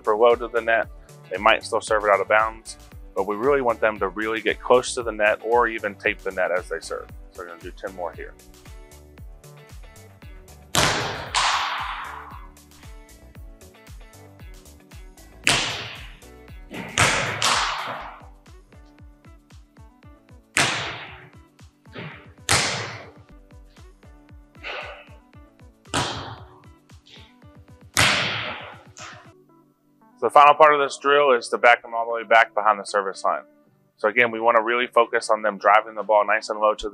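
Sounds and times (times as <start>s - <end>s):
background music: 0.0s - 36.9s
volleyball hand slaps: 10.7s - 12.4s, 15.4s - 18.4s, 20.6s - 21.3s, 22.0s - 23.2s, 25.9s - 27.3s, 27.9s - 29.3s
ball striking floor or net: 10.7s - 12.5s, 15.4s - 18.4s, 20.6s - 21.4s, 22.0s - 23.2s, 25.9s - 27.3s, 28.0s - 29.3s.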